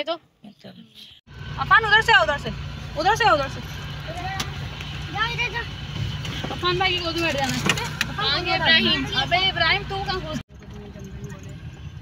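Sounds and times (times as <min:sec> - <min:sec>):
car engine and road drone: 0:01.0 - 0:12.0.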